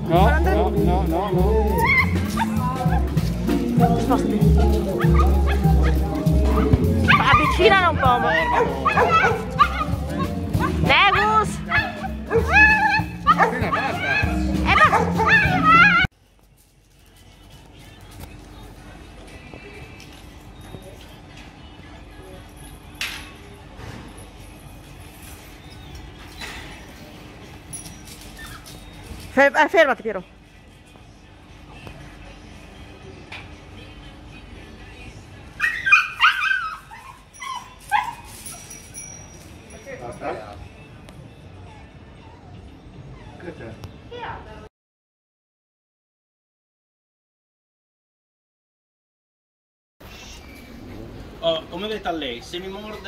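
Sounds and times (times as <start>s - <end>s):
background music: 0.0s - 20.6s
dogs barking: 1.4s - 16.1s, 35.6s - 39.0s.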